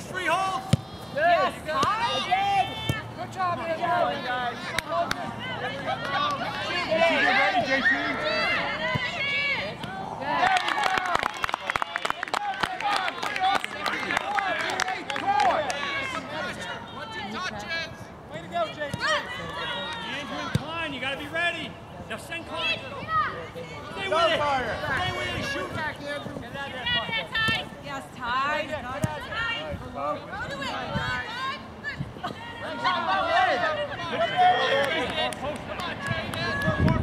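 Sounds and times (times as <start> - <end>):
voices calling and shouting: 0.0 - 37.0.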